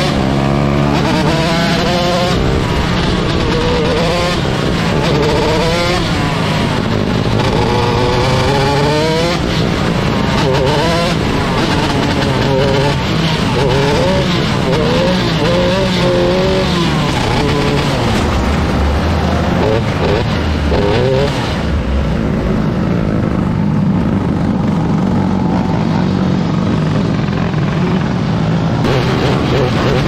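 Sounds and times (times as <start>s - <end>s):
racing car engine: 0.0s - 30.0s.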